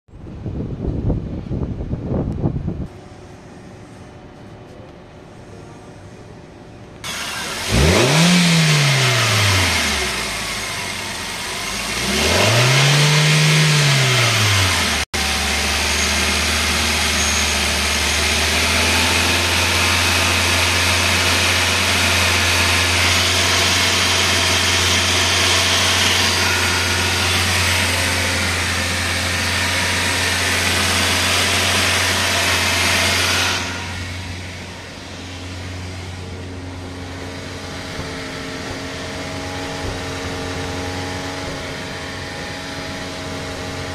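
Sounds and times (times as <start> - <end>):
car engine revving and idling: 7.0 - 43.9.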